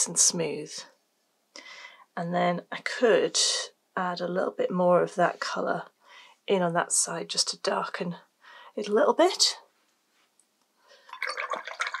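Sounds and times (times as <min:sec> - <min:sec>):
water splashing and dripping: 0:11.1 - 0:12.0.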